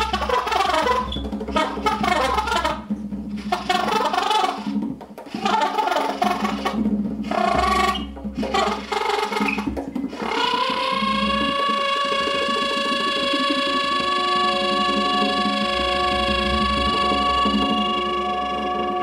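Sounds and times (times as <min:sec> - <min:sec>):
percussion: 0:00.0 - 0:19.0
soprano saxophone: 0:05.4 - 0:19.0.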